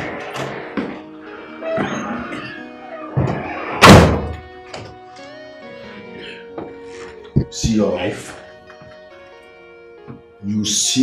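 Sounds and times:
background music: 0.0s - 11.0s
door slamming shut: 3.0s - 4.5s.

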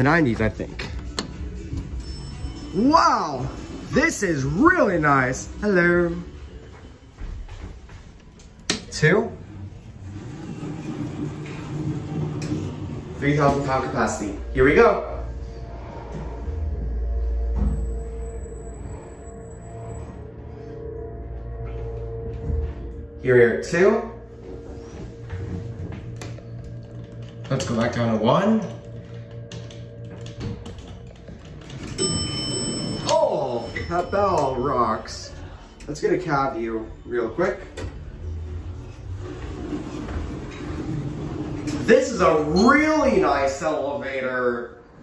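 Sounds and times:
elevator droning hum: 9.3s - 43.8s.

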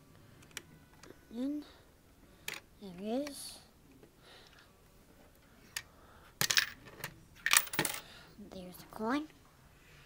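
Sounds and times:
coin clattering on wooden table: 6.4s - 8.0s.

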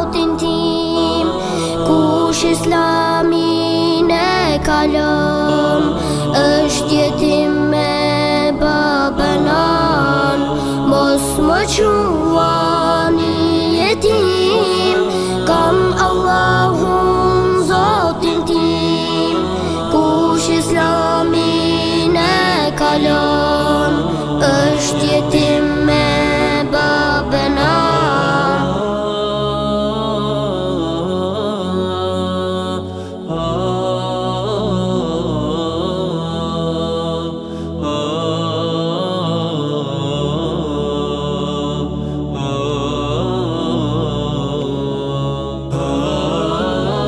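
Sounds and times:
person singing: 0.0s - 36.9s
low backing drone: 0.0s - 47.0s
wordless chant-like vocals: 0.0s - 47.0s.

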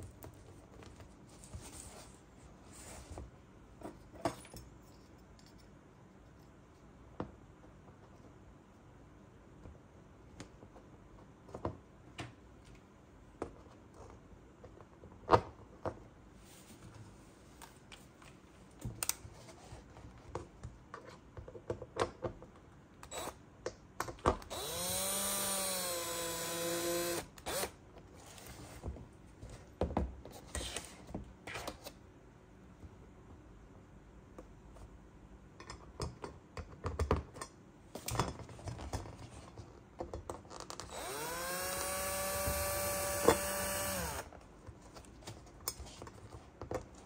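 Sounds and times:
cordless drill driving screw: 23.1s - 23.4s, 24.5s - 27.8s, 40.9s - 44.3s.

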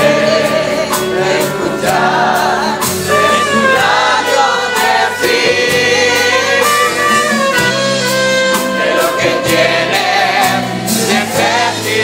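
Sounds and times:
church choir singing a hymn: 0.0s - 12.0s
drums keeping a steady beat: 0.0s - 12.0s
piano: 0.0s - 12.0s
trumpets: 3.0s - 11.2s.

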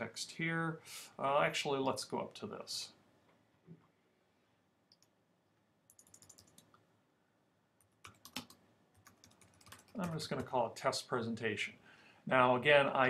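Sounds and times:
faint keyboard typing: 5.9s - 6.8s, 7.8s - 10.6s.

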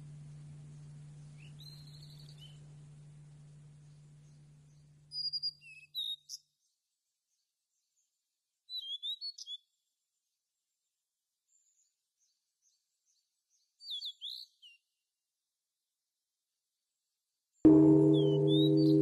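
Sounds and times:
songbird chirping and whistling: 0.3s - 2.6s, 5.1s - 6.5s, 8.7s - 9.6s, 13.8s - 14.8s, 17.8s - 19.0s.

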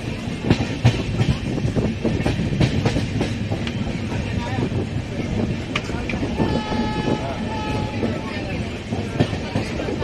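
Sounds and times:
train wheels rumbling and clattering: 0.0s - 10.0s
train horn: 6.4s - 8.3s.

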